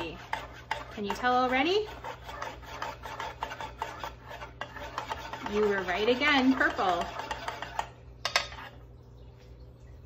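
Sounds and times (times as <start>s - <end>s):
spoon scraping metal tin: 0.0s - 8.8s.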